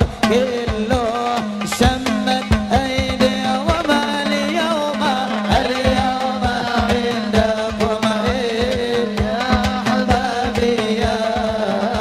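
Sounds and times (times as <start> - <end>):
drum beats: 0.0 - 12.0
man singing into a microphone: 0.0 - 12.0.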